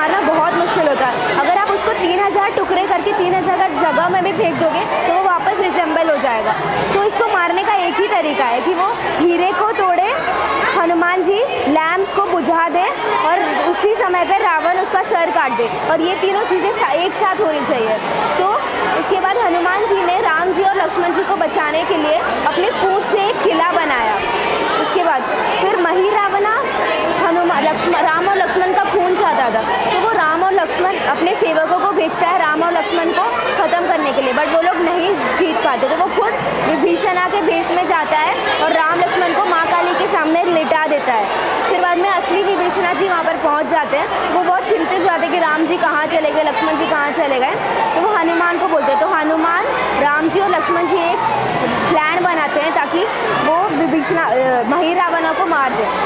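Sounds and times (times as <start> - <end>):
girl talking: 0.0 - 55.8
background voices chattering: 0.0 - 56.0.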